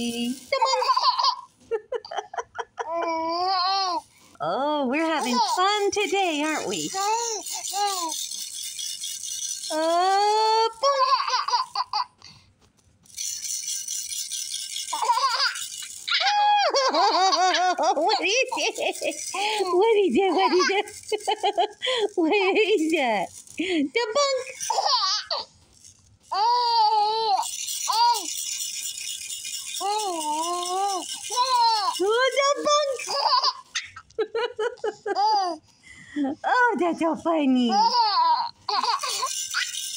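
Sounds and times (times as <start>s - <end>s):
plastic rattle shaken: 0.0s - 35.6s, 36.6s - 39.9s
baby giggling: 0.4s - 4.0s, 5.2s - 8.1s, 9.7s - 12.2s, 14.9s - 22.9s, 24.2s - 25.5s, 29.8s - 35.6s, 37.7s - 39.8s.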